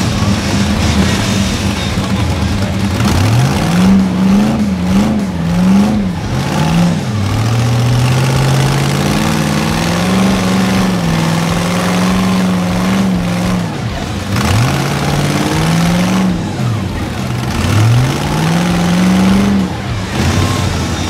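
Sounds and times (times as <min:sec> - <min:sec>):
buggy engine revving: 0:00.0 - 0:21.0.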